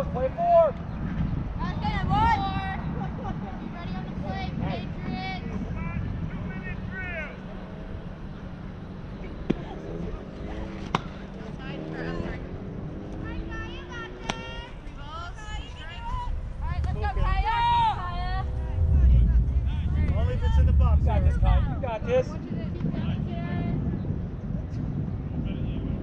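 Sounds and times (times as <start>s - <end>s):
distant people calling out: 1.6s - 21.8s
softball bat smacks: 9.4s - 9.7s, 10.8s - 11.2s, 14.2s - 14.6s.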